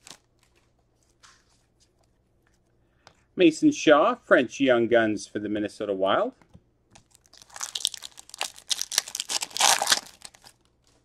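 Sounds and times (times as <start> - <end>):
foil pack crinkling and tearing: 0.0 - 0.6, 7.0 - 10.8.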